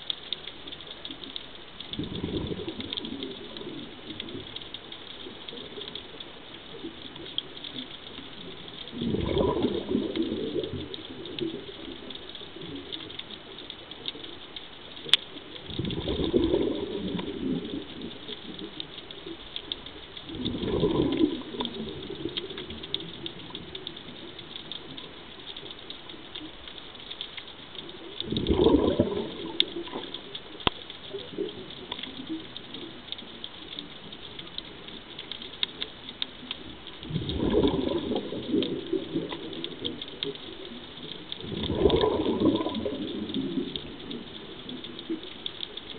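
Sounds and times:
faint crackling clicks: 0.0 - 45.9
regulator bubbles underwater: 0.0 - 45.9.

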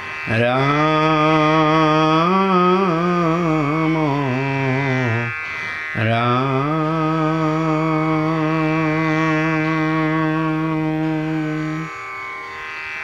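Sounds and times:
person singing a chant: 0.0 - 12.2
steady drone: 0.0 - 12.7.

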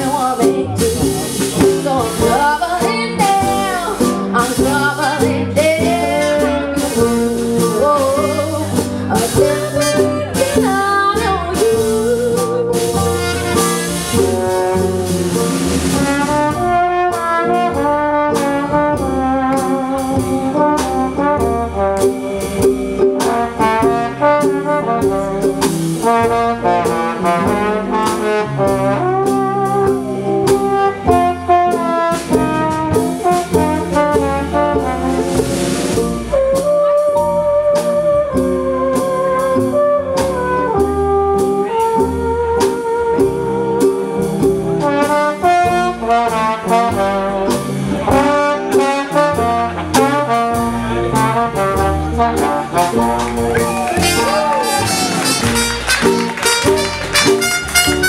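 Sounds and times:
live band playing: 0.0 - 58.0
trumpet and trombone lead: 0.0 - 58.0
fiddle: 53.2 - 58.0.

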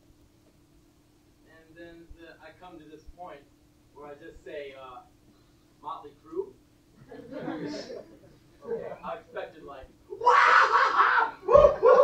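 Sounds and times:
man screaming loudly: 10.2 - 12.0.

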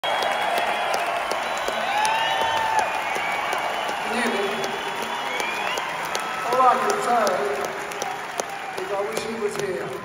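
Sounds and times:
audience applauding: 0.0 - 10.0
close hand claps: 0.0 - 10.0.

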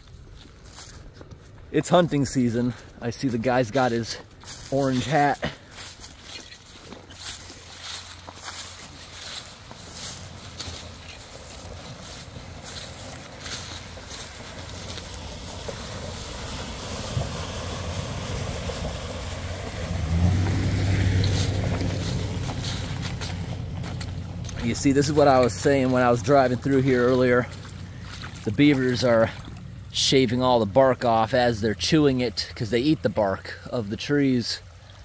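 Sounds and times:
water swishing off tyres: 0.0 - 35.0
truck driving past: 1.8 - 33.6.

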